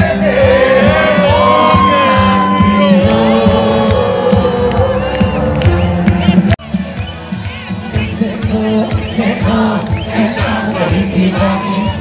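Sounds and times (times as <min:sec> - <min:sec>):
man singing: 0:00.0 - 0:05.6, 0:07.9 - 0:12.0
live band music: 0:00.0 - 0:11.0
drumbeat: 0:00.0 - 0:11.5
crowd noise: 0:00.0 - 0:12.0.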